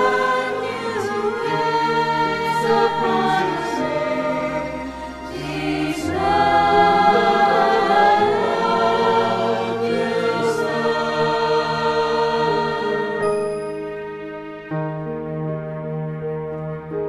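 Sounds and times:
choir singing a hymn: 0:00.0 - 0:14.0.

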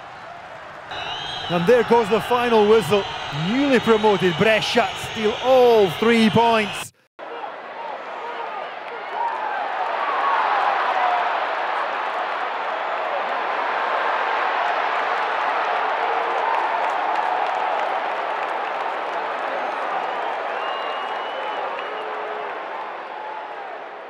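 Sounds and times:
stadium crowd noise: 0:00.0 - 0:24.0.

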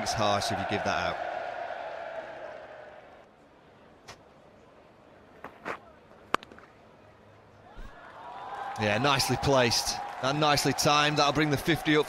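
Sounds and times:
faint ground ambience: 0:00.0 - 0:12.0.

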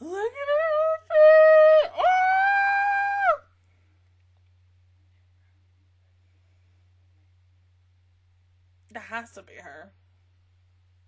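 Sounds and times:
woman squealing: 0:00.0 - 0:03.4.

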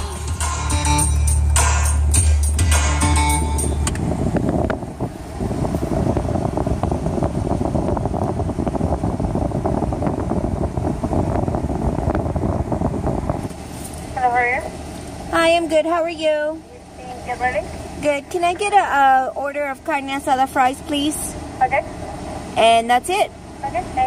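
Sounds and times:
song with heavy bass line: 0:00.0 - 0:04.7
car engine idling: 0:00.0 - 0:24.0.

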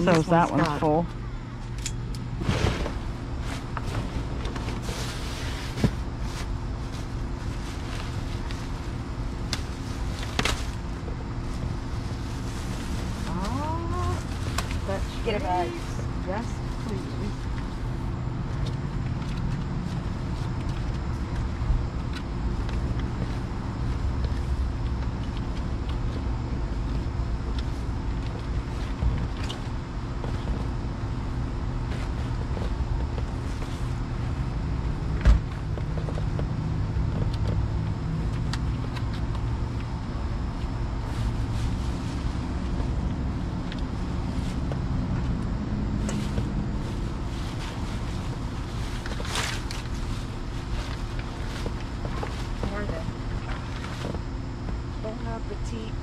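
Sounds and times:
faint hum: 0:00.0 - 0:56.0
low mechanical rumble: 0:00.0 - 0:56.0.

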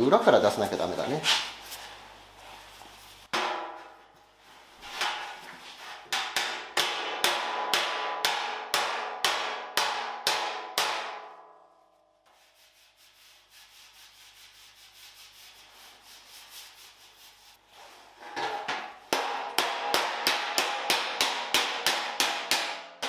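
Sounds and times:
hammer striking steel panel: 0:03.3 - 0:04.0, 0:05.0 - 0:05.4, 0:06.1 - 0:11.7, 0:18.3 - 0:23.0.

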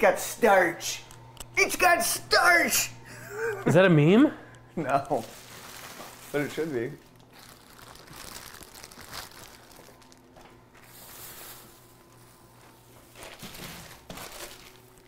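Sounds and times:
plastic bags crinkling: 0:05.1 - 0:15.0.

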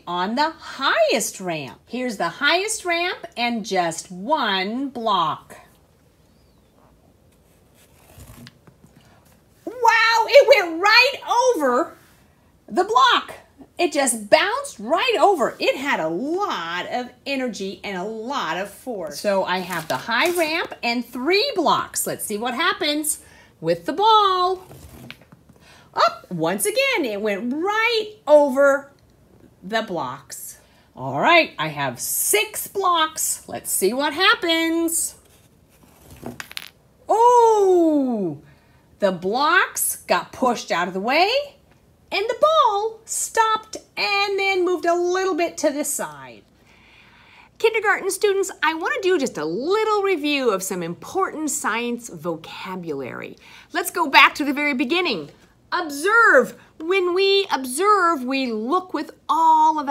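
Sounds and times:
ball rolling down cardboard ramp: 0:35.8 - 0:36.8
ball bouncing on tile floor: 0:36.2 - 0:36.8.

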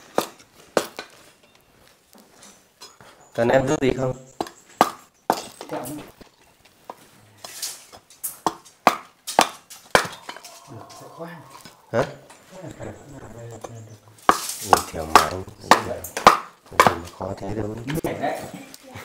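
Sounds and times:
knife splitting firewood: 0:00.0 - 0:01.4, 0:04.4 - 0:10.6, 0:13.7 - 0:17.2.

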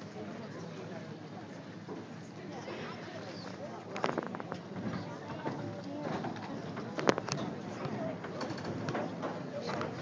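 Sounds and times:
crowd murmur in a hall: 0:00.0 - 0:10.0.

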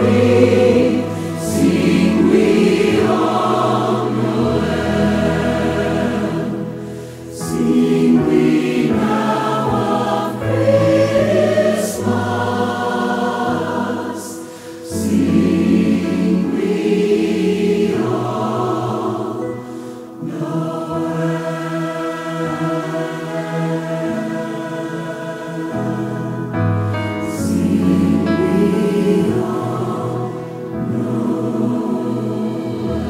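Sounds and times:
choir singing: 0:00.0 - 0:33.0.

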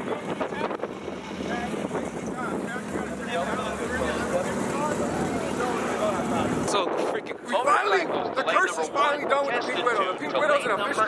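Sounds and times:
men talking excitedly: 0:00.0 - 0:11.0.

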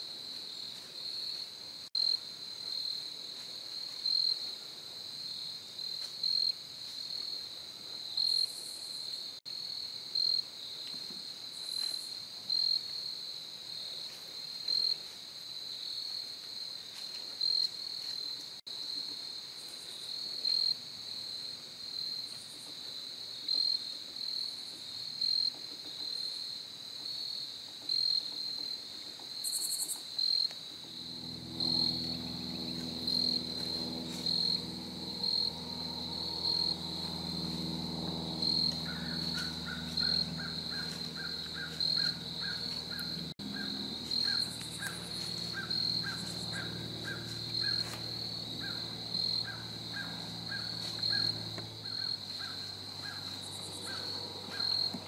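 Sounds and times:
crickets chirping: 0:00.0 - 0:55.0.

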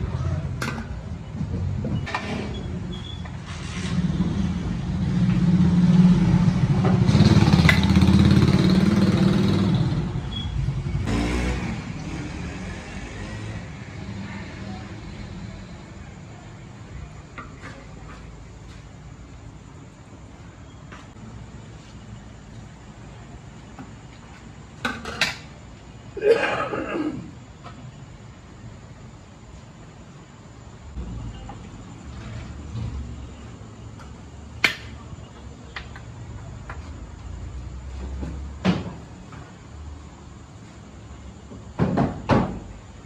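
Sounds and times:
rough scraping sound: 0:03.3 - 0:04.6.

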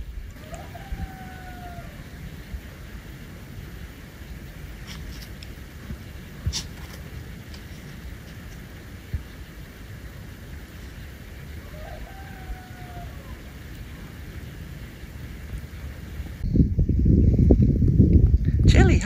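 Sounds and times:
low steady background noise: 0:00.0 - 0:16.5
rooster crowing: 0:00.3 - 0:02.5, 0:11.4 - 0:14.2
loud low rumbling: 0:05.5 - 0:19.0.

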